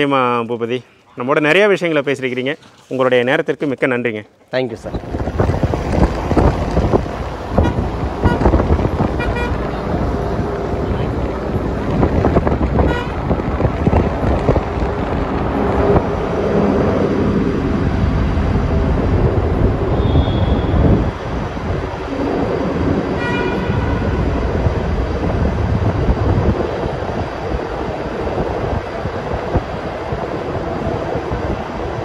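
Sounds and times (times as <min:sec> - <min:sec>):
traffic rumble in tunnel: 0:04.7 - 0:32.0.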